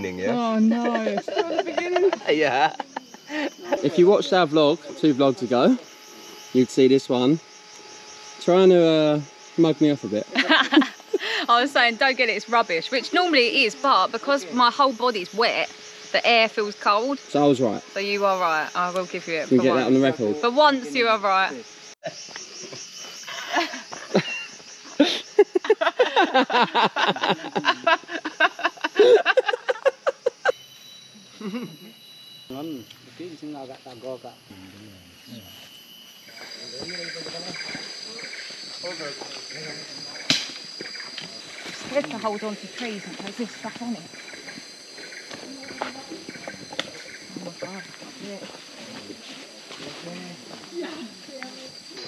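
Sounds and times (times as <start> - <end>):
rainforest insects chorus: 0.0 - 52.0
people laughing: 0.7 - 4.2, 10.4 - 11.5, 23.3 - 30.5
sharp click: 40.3 - 40.7.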